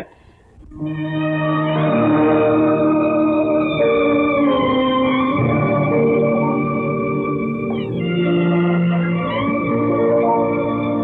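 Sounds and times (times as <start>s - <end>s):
film score held chords: 0.8s - 11.0s.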